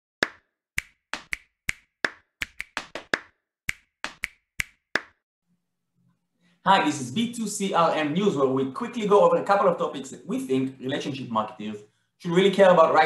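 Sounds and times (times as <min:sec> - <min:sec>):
sharp clap-like strikes: 0:00.2 - 0:05.2.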